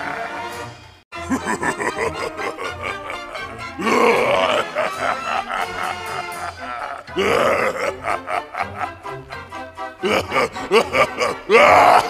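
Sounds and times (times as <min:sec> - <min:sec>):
recorded monster voice: 0:00.0 - 0:00.5, 0:01.2 - 0:08.9, 0:10.0 - 0:12.0
carnival-style music: 0:00.0 - 0:12.0.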